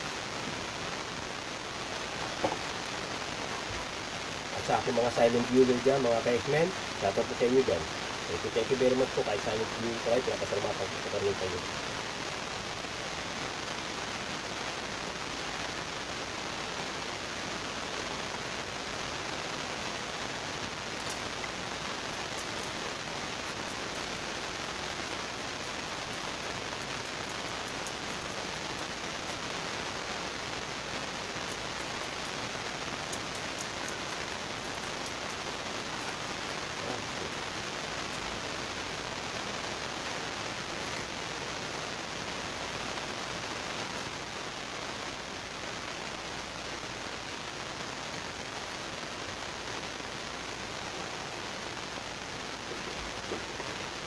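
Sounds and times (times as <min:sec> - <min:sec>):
steady rushing hiss: 0:00.0 - 0:54.0
faint clicks: 0:33.0 - 0:37.4.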